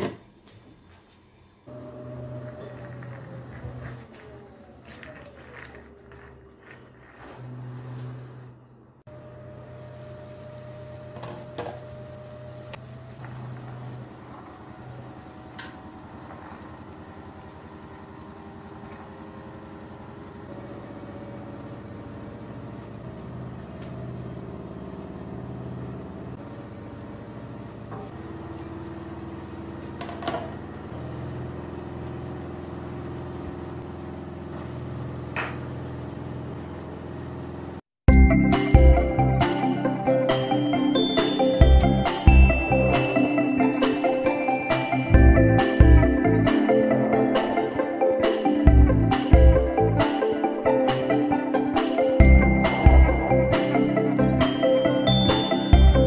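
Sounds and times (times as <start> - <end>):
low mechanical hum: 0.0 - 43.9
food simmering in a pot: 9.1 - 37.8.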